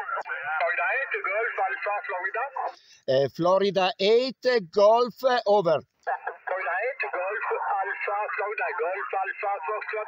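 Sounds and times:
radio voice from speaker: 0:00.0 - 0:02.8, 0:06.1 - 0:10.0.

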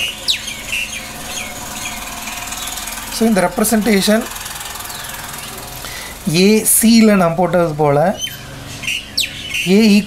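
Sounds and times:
steady background hum: 0:00.0 - 0:10.0
person speaking: 0:03.1 - 0:04.4, 0:06.0 - 0:08.2.

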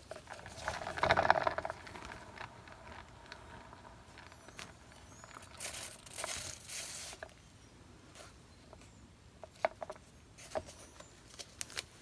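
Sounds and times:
turntable rattling whirr: 0:00.0 - 0:07.3.

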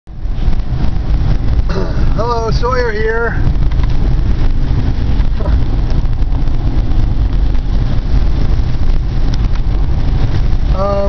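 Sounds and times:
car road noise rumble: 0:00.0 - 0:11.0
man talking: 0:01.7 - 0:03.4, 0:10.7 - 0:11.0.

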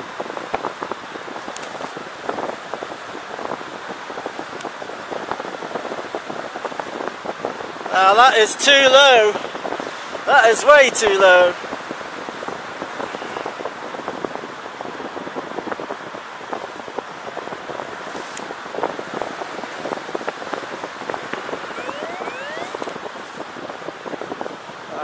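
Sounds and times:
faint rising chirps: 0:21.8 - 0:22.8.

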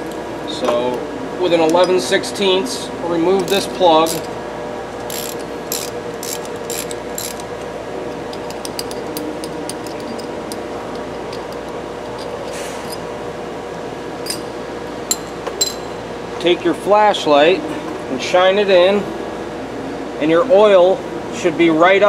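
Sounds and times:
steady hum: 0:00.0 - 0:22.0
ratchet wrench clicking: 0:03.3 - 0:04.3, 0:05.0 - 0:07.6, 0:08.3 - 0:13.0.

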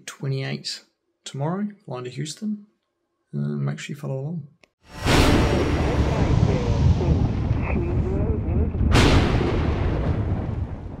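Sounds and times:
sharp thunder crack: 0:04.9 - 0:11.0
deep thunder rumble: 0:05.0 - 0:11.0.

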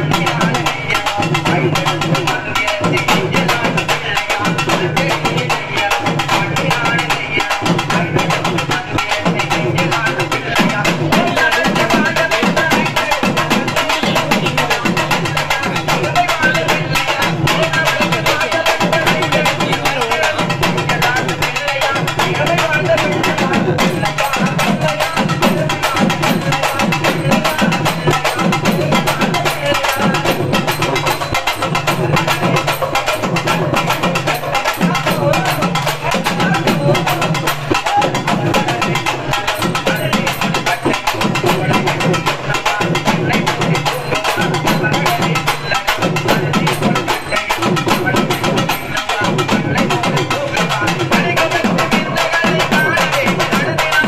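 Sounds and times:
drum ensemble playing fast rhythm: 0:00.0 - 0:54.0.

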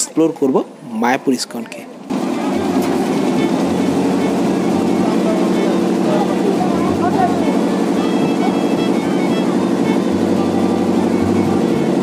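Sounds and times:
faint voices: 0:01.5 - 0:12.0
boat diesel engine running: 0:02.1 - 0:12.0.

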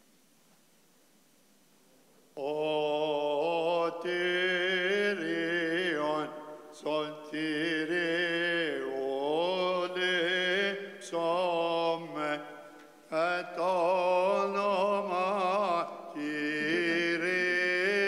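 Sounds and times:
man chanting a hymn: 0:02.4 - 0:18.0.

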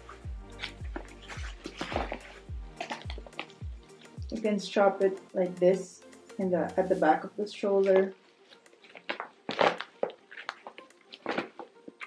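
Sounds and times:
cloth rustling: 0:00.0 - 0:04.3, 0:07.8 - 0:12.0.

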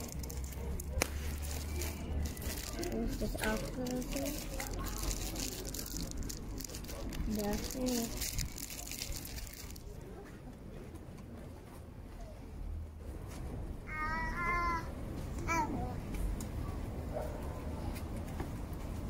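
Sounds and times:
rustling on microphone: 0:00.0 - 0:10.0
voices: 0:00.0 - 0:11.1
steady outdoor noise: 0:00.0 - 0:19.0.

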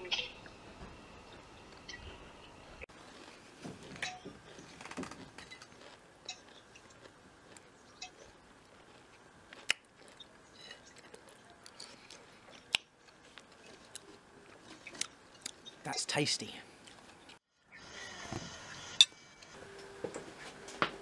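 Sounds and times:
person chewing cake: 0:04.1 - 0:15.7.

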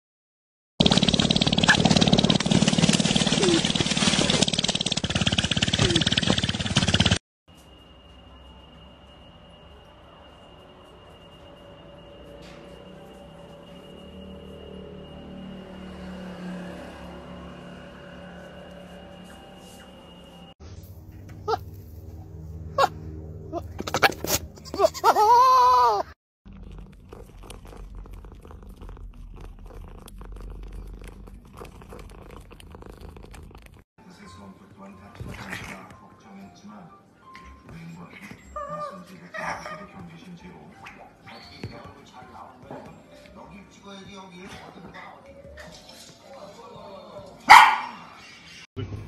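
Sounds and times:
dog barking: 0:47.4 - 0:48.1.

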